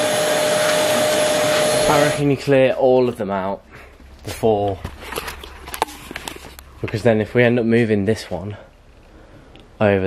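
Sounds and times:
objects being handled: 4.0s - 7.1s.

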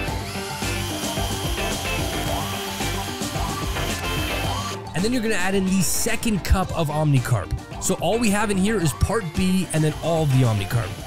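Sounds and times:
power drill with paddle mixer: 0.0s - 4.9s, 9.2s - 11.0s
background music: 0.0s - 11.0s.

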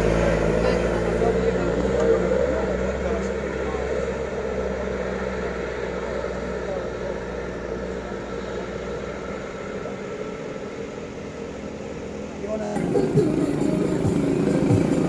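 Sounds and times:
faint voices: 0.0s - 15.0s
minibus engine climbing: 0.0s - 15.0s.

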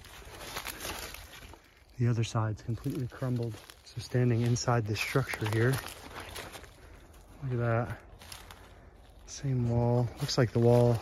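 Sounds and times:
footsteps through dry leaves: 0.0s - 11.0s.

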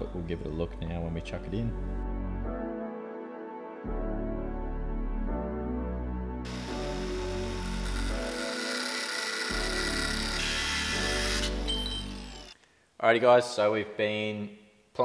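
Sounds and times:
angle grinder cutting steel: 6.5s - 12.6s.

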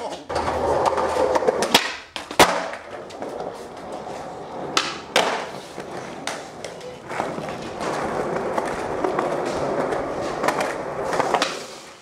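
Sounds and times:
skateboard wheels rolling on concrete: 0.0s - 12.0s.

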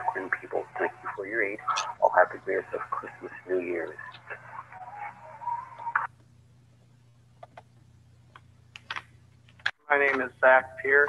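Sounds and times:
caller's voice: 0.0s - 6.1s
phone line low hum: 0.0s - 11.0s.

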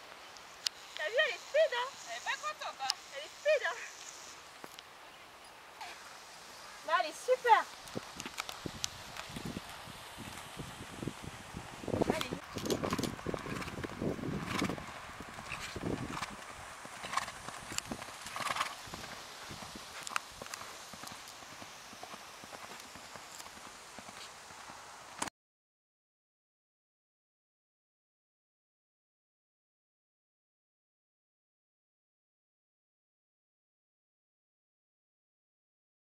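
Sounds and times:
hooves trotting on sand: 0.1s - 4.9s, 5.8s - 25.3s.

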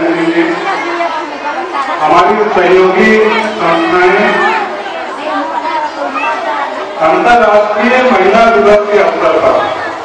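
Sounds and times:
indistinct chatter in a hall: 0.0s - 10.0s.

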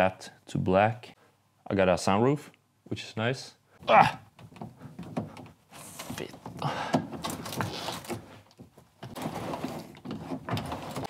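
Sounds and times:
sunroof sliding and clicking: 4.3s - 11.0s.

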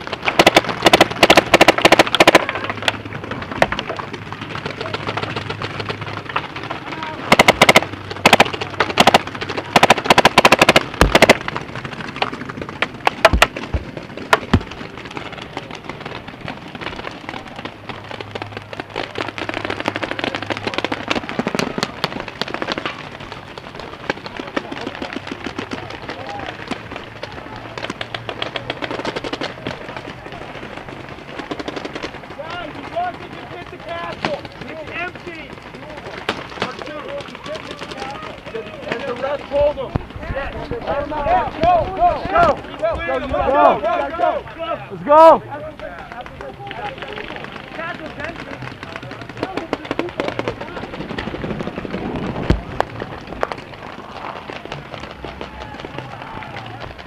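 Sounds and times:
paintball markers firing: 0.0s - 44.3s, 45.8s - 57.0s.

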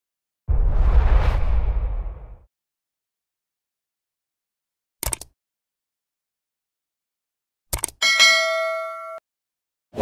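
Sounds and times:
bell chime ding: 8.0s - 9.2s.

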